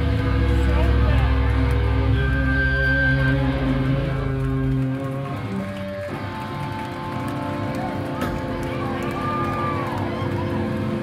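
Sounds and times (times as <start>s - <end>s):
heavy bass: 0.0s - 11.0s.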